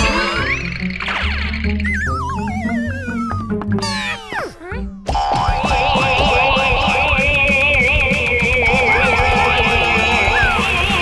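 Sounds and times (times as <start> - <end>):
cluster of falling tones: 0.0 - 6.1
background music: 0.0 - 11.0.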